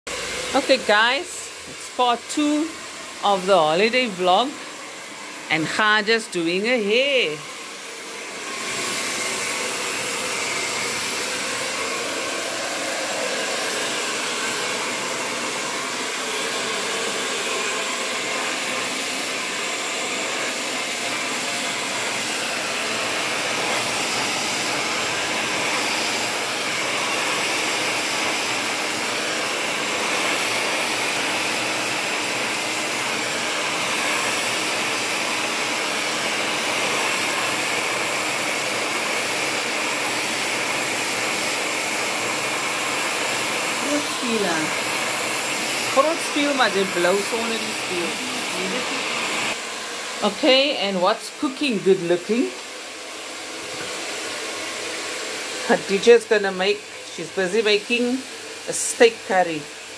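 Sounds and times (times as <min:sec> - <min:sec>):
hair dryer running: 0:00.1 - 0:59.9.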